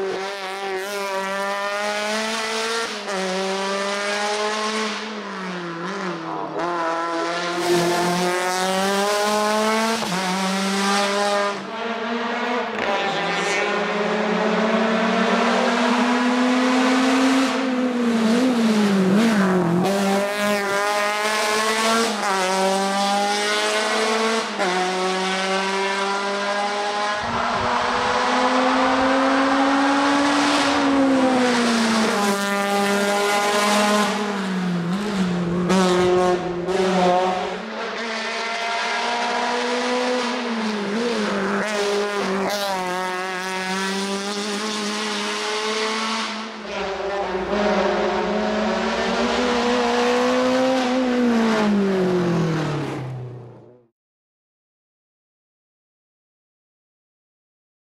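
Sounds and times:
race car engine revving hard: 0:00.0 - 0:53.2.

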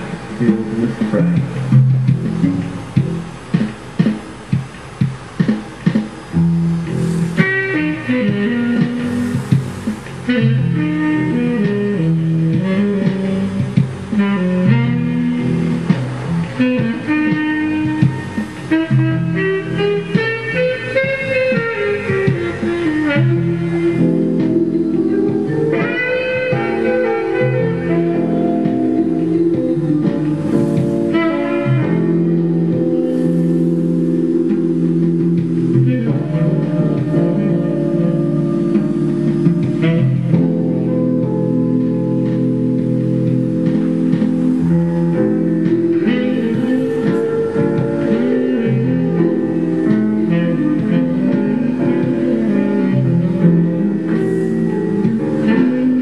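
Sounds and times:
smooth jazz on keyboards: 0:00.0 - 0:56.0
tenor saxophone melody: 0:06.5 - 0:56.0.

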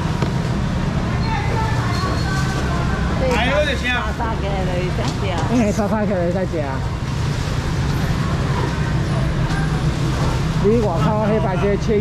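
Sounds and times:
even background noise: 0:00.0 - 0:12.0.

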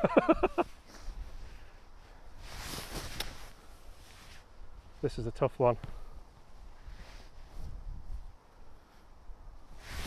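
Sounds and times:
person laughing: 0:00.0 - 0:00.7
faint outdoor background: 0:00.0 - 0:10.0.

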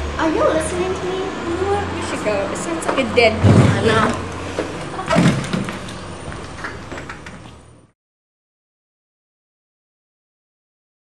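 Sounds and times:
knocks and bumps of people moving: 0:02.8 - 0:07.8
thump: 0:03.4 - 0:04.1, 0:05.1 - 0:05.8.

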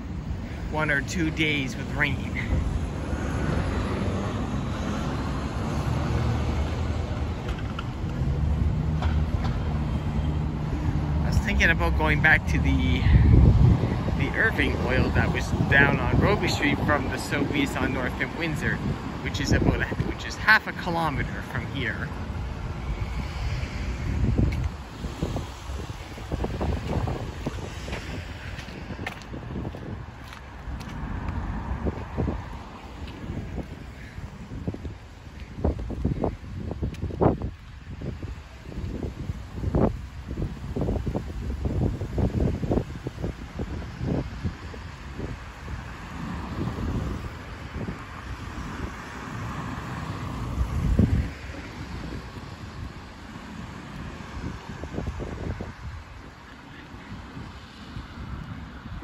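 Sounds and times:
street traffic: 0:00.0 - 0:59.0
wind buffeting microphone: 0:00.0 - 0:59.0.

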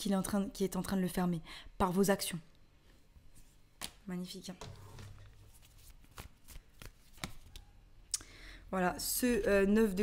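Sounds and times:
cards being shuffled: 0:04.7 - 0:07.7.

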